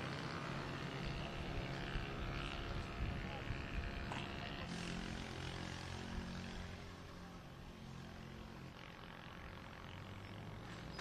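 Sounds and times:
faint street noise: 0:00.0 - 0:11.0
low engine hum: 0:00.0 - 0:11.0.

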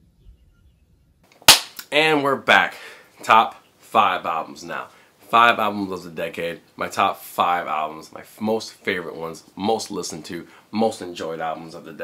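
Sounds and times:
sharp crack: 0:01.3 - 0:02.1
man speaking: 0:01.8 - 0:12.0.

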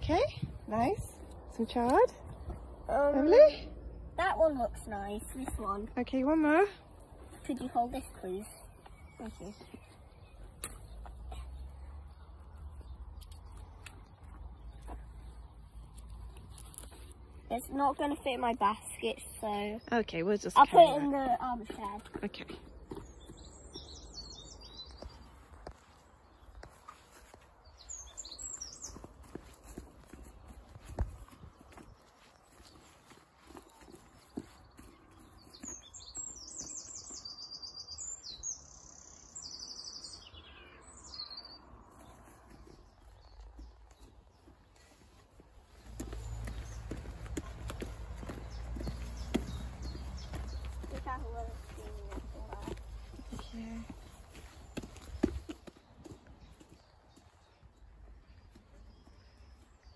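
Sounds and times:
small birds chirping: 0:00.0 - 0:59.9
faint footsteps: 0:00.1 - 0:19.6, 0:20.4 - 0:37.4, 0:41.7 - 0:59.8.

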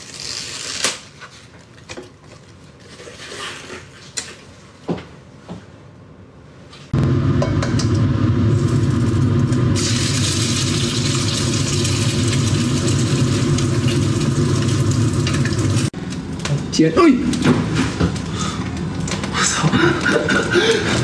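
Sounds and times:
low rumble: 0:07.0 - 0:15.9
egg sizzling in hot oil: 0:07.7 - 0:16.0.

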